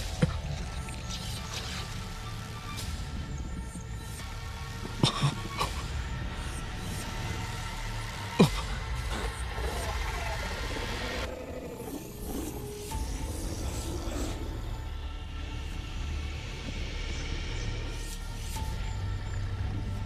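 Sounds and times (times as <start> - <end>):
dramatic film score music: 0.0 - 20.0.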